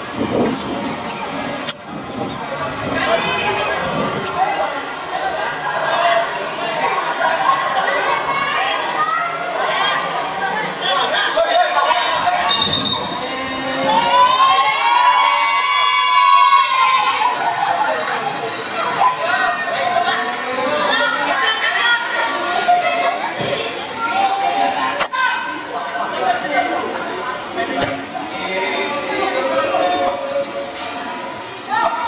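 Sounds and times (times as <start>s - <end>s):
outdoor rushing field noise: 0.0s - 32.0s.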